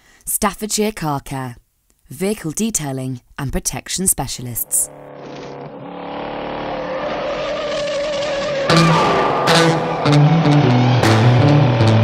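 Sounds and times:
car engine droning: 4.8s - 12.0s.

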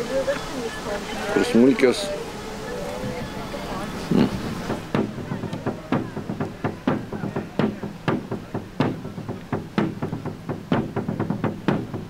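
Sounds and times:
sharp knocks: 4.7s - 12.0s.

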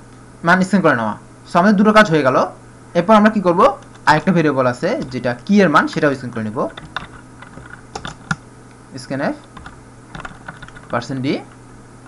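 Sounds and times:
computer keyboard keystrokes: 3.8s - 4.2s, 5.8s - 8.4s, 9.4s - 11.0s.

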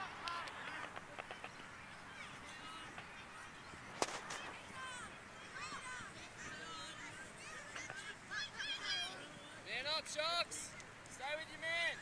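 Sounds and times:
distant calls and shouts: 0.0s - 12.0s
sharp crack: 3.9s - 4.5s.

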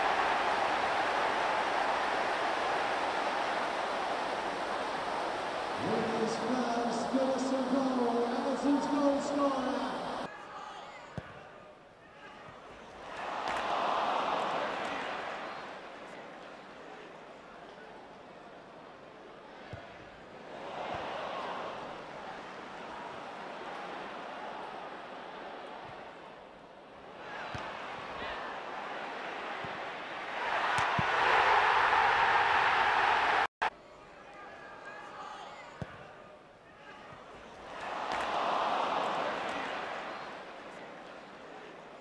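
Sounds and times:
stadium crowd cheering: 0.0s - 42.0s.

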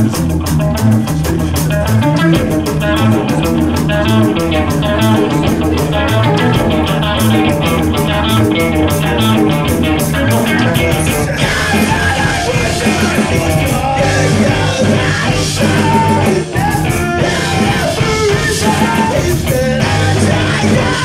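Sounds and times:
band playing live: 0.0s - 21.0s.

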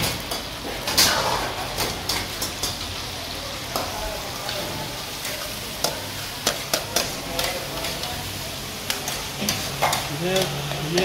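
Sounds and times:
food sizzling in wok: 0.0s - 11.0s.

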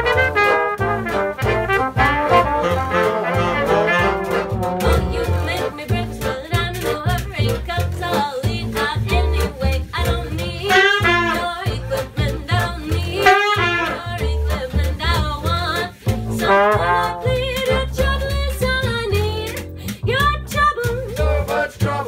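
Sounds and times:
jazz band playing: 0.0s - 22.0s
woman singing: 4.8s - 22.0s.

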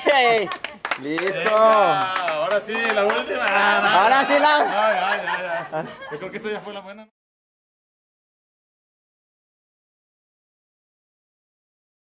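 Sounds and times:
man speaking: 0.0s - 7.1s.

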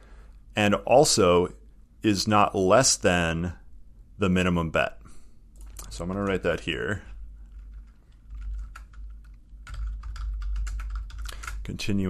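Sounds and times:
steady low hum: 0.0s - 12.0s
typing on computer keyboard: 7.5s - 11.6s.

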